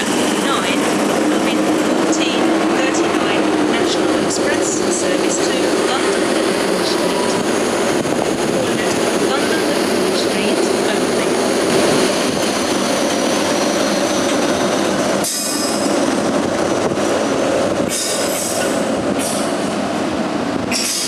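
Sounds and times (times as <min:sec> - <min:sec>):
train rumbling: 0:00.0 - 0:21.0.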